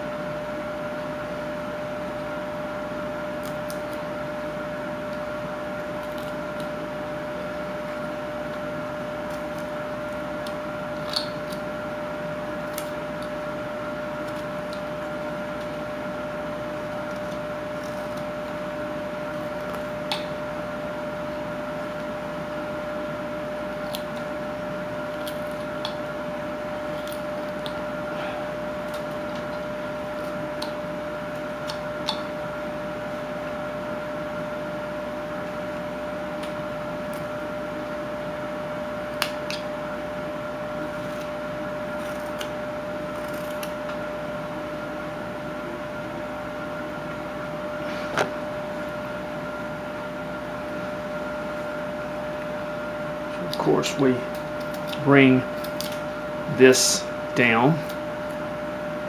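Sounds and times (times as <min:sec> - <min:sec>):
steady hum: 0:00.0 - 0:59.0
knife carving wood: 0:05.0 - 0:20.6, 0:23.5 - 0:32.4, 0:39.0 - 0:39.8, 0:40.8 - 0:44.0, 0:53.5 - 0:56.1.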